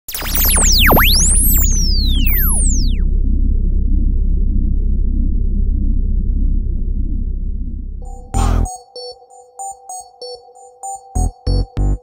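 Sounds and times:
synthesizer pitch sweeps: 0.0 - 8.8
deep bass drone: 0.1 - 8.7.

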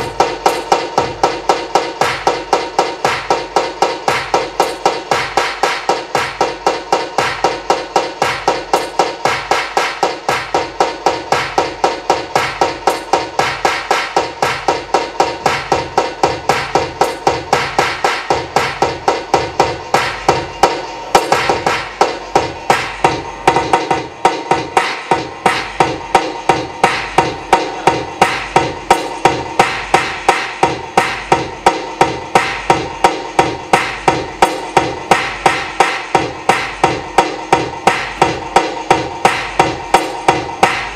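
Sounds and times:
fast hammering electronic pulse: 0.0 - 40.9.

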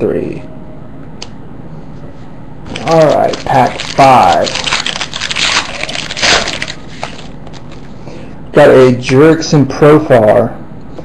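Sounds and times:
foil wrapper tearing and crinkling: 2.7 - 7.9.

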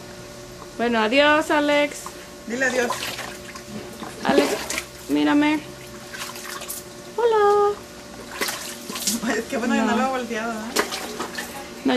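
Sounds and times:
water splashing in a basin: 2.6 - 7.2, 8.2 - 9.5, 10.7 - 11.6.

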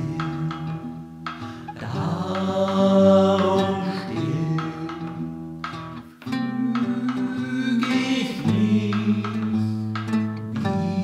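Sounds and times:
multi-voice vocal harmony singing: 0.0 - 5.4, 6.3 - 11.0.

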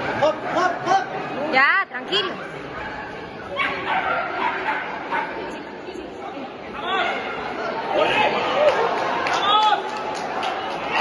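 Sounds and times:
crowd chatter: 0.0 - 11.0
dog barking: 3.6 - 5.4.

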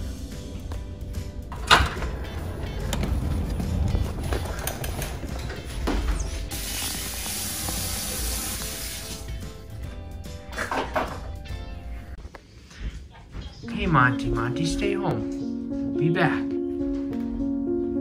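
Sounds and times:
background music: 0.0 - 18.0
door knocks: 1.5 - 6.2
door latch click: 1.6 - 3.0
air hissing from wall vent: 6.2 - 9.4.

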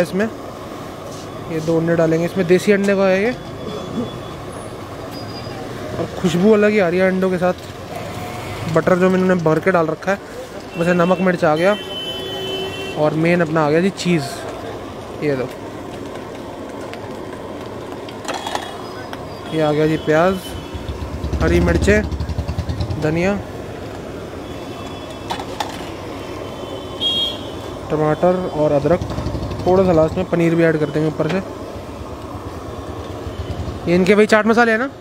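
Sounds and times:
gas burner rumble: 14.0 - 24.4, 27.6 - 34.4.

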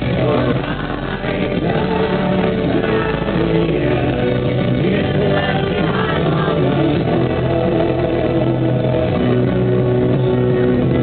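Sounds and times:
live rock band music: 0.0 - 11.0.

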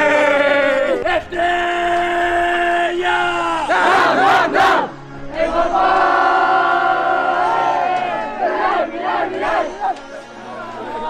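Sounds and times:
group shouting a cheer: 0.0 - 11.0.

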